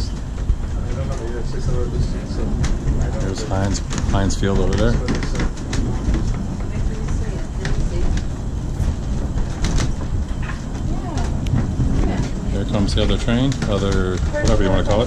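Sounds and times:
clicks and knocks of running gear: 0.0 - 15.0
funicular car rumbling on rails: 0.0 - 15.0.

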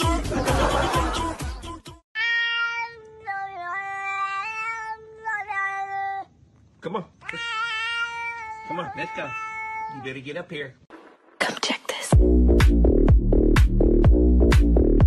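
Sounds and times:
cat yowling meows: 2.2 - 6.3, 7.2 - 10.2.

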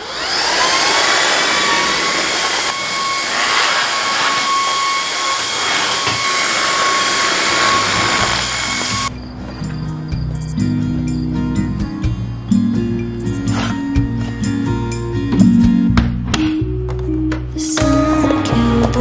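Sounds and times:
vacuum cleaner motor whine: 0.0 - 9.1
music: 9.1 - 19.0.

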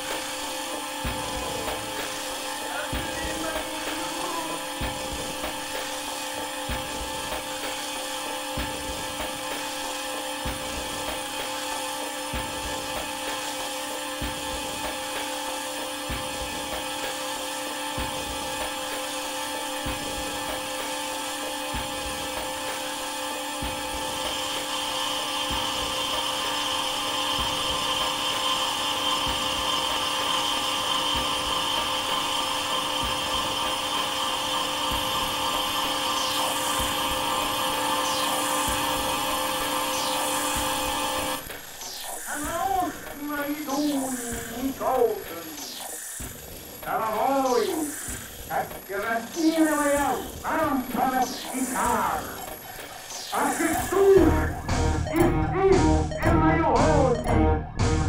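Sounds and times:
whining electronic drone: 0.0 - 58.0.

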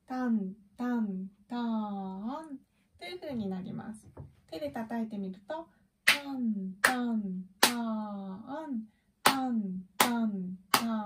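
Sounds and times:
woman chanting syllables: 4.6 - 11.0
woman clapping: 6.1 - 7.0, 7.6 - 7.8, 9.3 - 11.0.

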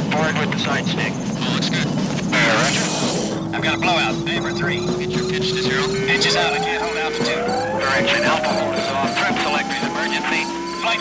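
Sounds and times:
radio voice chatter: 0.1 - 11.0
synth music: 1.1 - 11.0
synthesizer tone rising in pitch: 2.3 - 11.0.

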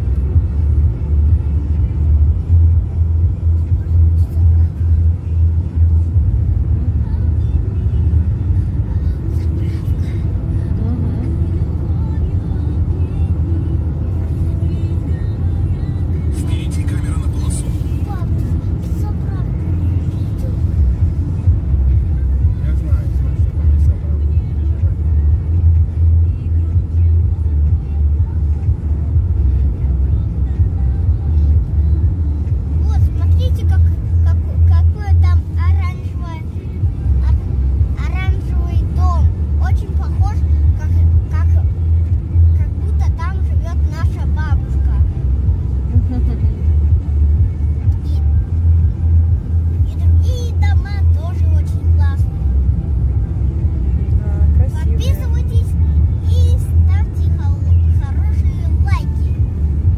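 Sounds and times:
car engine and tyres rumbling: 0.0 - 59.9
voices: 3.6 - 59.5.

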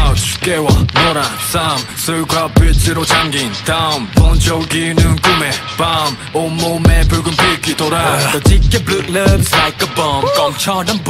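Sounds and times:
man rapping over a beat: 0.0 - 11.0
deep kick drum hits: 8.5 - 9.5.

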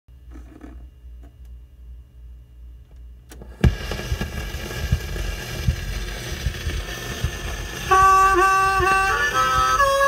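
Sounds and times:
record surface hiss and crackles: 0.1 - 10.0
recorded music: 3.6 - 10.0.

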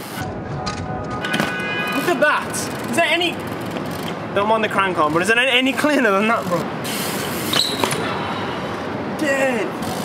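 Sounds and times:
short high tyre squeal: 6.9 - 8.8.

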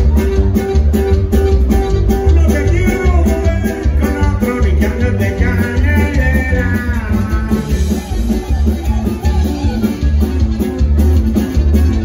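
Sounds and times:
accordion: 0.0 - 12.0
bajo sexto guitar: 0.0 - 12.0
bass guitar: 0.0 - 12.0
drums: 0.0 - 12.0.

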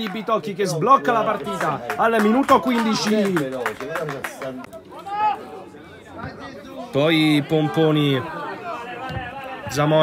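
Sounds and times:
faint chatter: 0.0 - 10.0.

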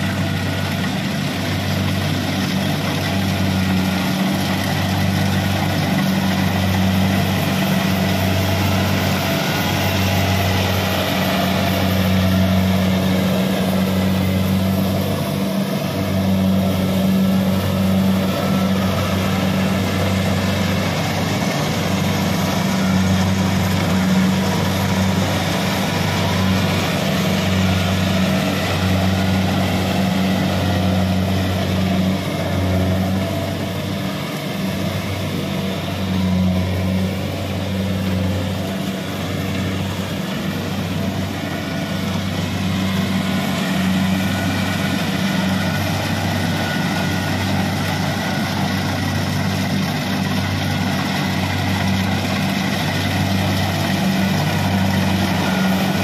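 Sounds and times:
combine harvester diesel drone: 0.0 - 56.0.

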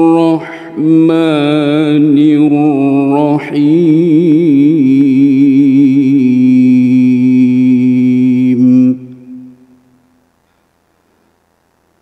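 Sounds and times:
solo voice chanting melodically: 0.0 - 9.9.

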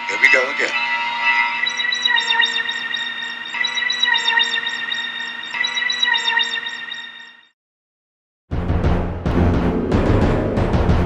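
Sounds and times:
shimmering electronic tone: 0.0 - 7.5
twinkling high notes: 0.1 - 7.3.

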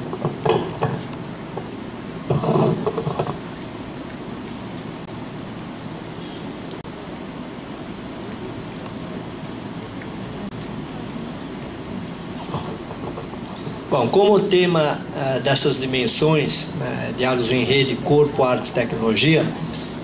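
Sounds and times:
room noise hiss: 0.0 - 20.0.

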